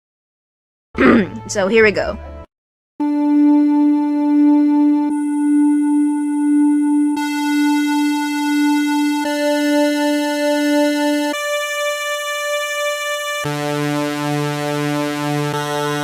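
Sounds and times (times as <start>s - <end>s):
buzzy synthesizer note: 3.0s - 16.0s.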